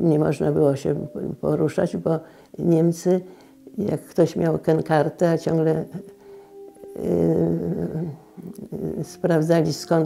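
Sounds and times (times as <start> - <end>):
elderly woman humming hesitation: 0.0 - 10.0.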